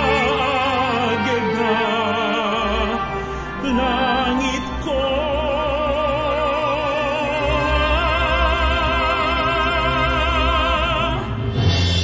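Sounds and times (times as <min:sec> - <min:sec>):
operatic singing with vibrato: 0:00.0 - 0:12.0.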